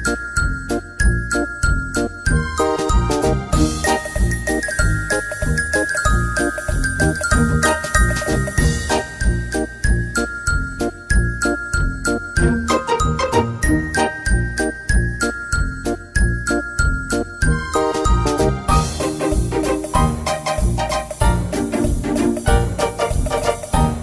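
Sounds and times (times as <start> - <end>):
bright melody over steady beat: 0.0 - 24.0.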